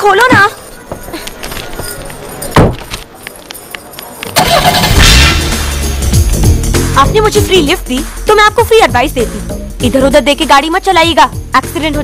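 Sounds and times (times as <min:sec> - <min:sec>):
music: 0:04.6 - 0:12.0.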